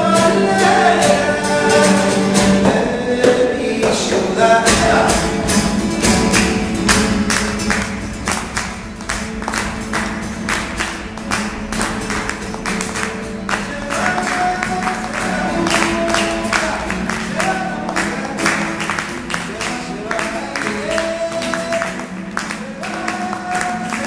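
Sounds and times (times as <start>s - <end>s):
classical guitar strummed fast: 0.0s - 24.0s.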